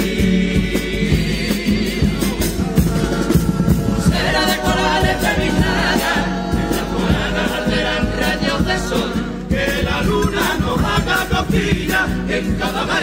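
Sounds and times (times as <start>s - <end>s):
bass drum beat: 0.0s - 13.0s
guitars: 0.0s - 13.0s
male choir singing: 0.0s - 13.0s.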